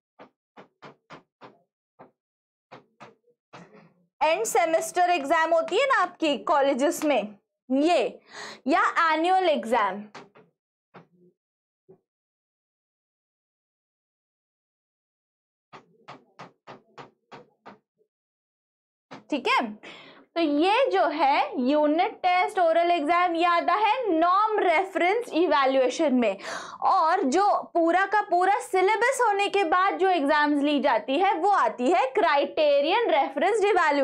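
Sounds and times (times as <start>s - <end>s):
marker pen writing on a board: 0.2s - 3.8s, 10.1s - 11.2s, 15.8s - 17.8s
stylus tapping on glass: 0.2s - 3.8s, 10.1s - 11.1s, 15.8s - 17.8s.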